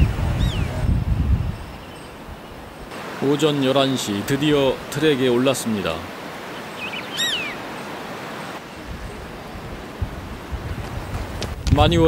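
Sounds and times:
outdoor background noise: 0.0s - 11.9s.

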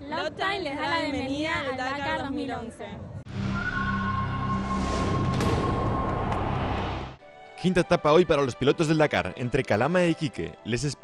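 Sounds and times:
music: 3.0s - 11.0s
loud rushing whoosh: 3.3s - 7.2s.

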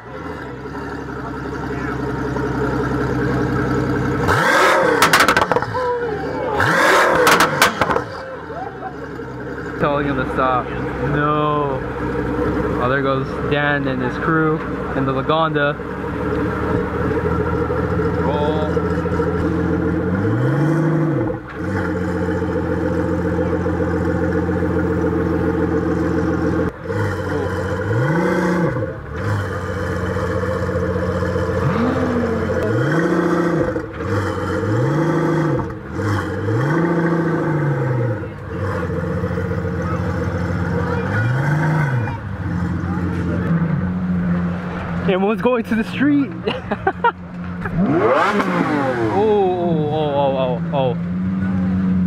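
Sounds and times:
car engine idling and revving: 0.0s - 52.0s.

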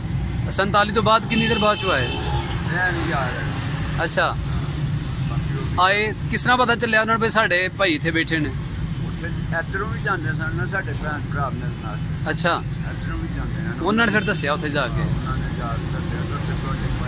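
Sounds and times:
road traffic rumble: 0.0s - 17.0s
old man speaking: 0.5s - 17.0s.

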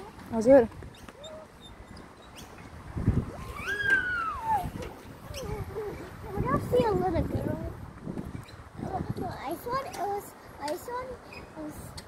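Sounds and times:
child crying out: 3.4s - 4.8s.

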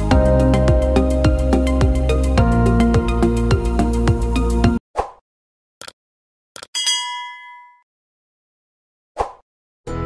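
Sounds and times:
bright bell ding: 6.8s - 7.8s.

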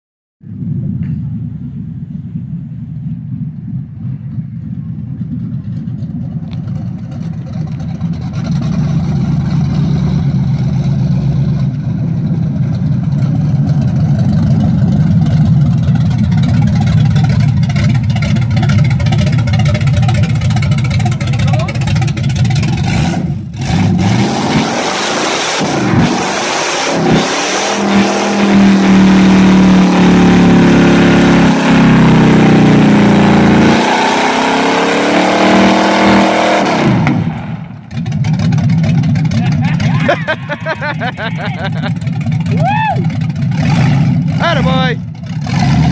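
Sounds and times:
car engine revving: 3.7s - 45.9s.

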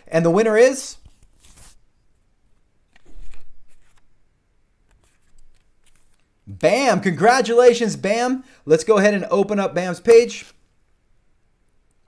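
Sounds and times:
rustling handling noise: 0.9s - 4.1s, 4.9s - 6.4s.

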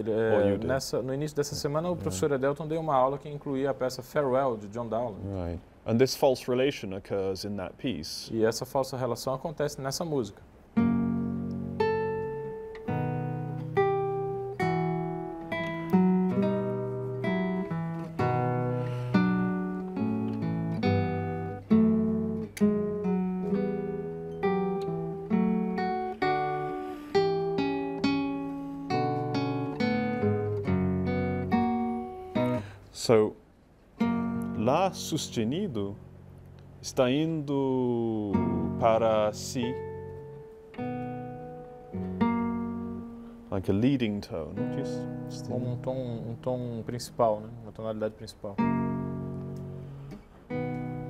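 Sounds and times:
person speaking: 0.0s - 10.5s, 34.4s - 36.1s, 36.7s - 40.2s, 43.5s - 48.7s
classical guitar playing: 1.6s - 2.7s, 10.6s - 32.8s, 33.9s - 51.0s.

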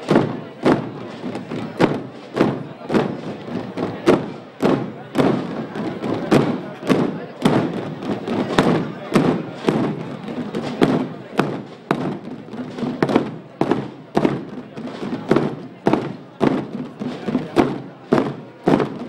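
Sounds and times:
muffled drum beating a march: 0.0s - 19.0s.

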